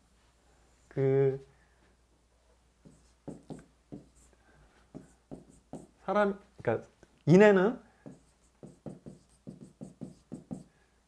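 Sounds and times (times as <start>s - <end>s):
pen writing on a whiteboard: 2.8s - 6.0s, 8.0s - 10.7s.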